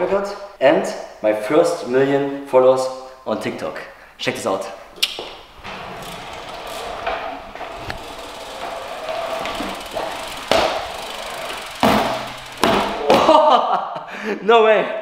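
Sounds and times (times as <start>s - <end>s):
bike tyres rolling on wooden floor: 5.2s - 13.6s
bike wheels thudding down: 5.2s - 13.6s.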